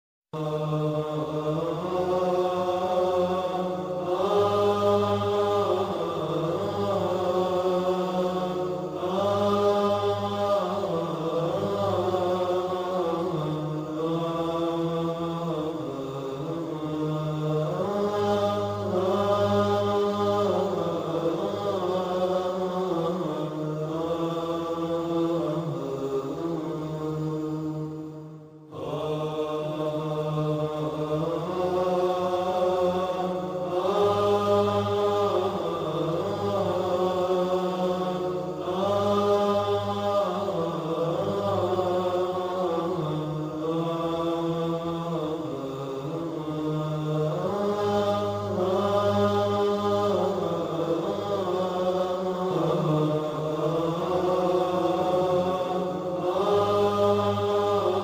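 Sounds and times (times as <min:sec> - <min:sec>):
low drone: 0:00.4 - 0:58.0
voices chanting held notes: 0:00.4 - 0:58.0.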